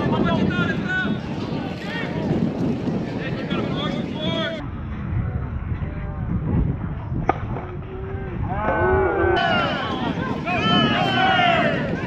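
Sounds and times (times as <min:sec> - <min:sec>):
people shouting and yelling: 0:07.7 - 0:12.0.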